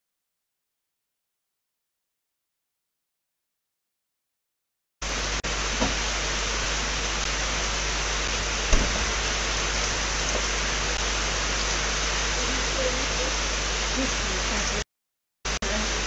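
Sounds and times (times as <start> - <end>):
low electrical hum: 5.0 - 14.8, 15.5 - 16.0
steady hiss: 5.0 - 14.8.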